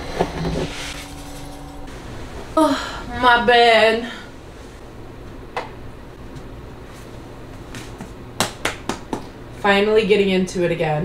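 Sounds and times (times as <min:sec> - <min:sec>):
steady low hum: 0:00.0 - 0:11.0
scoop scraping through cat litter: 0:00.5 - 0:01.7.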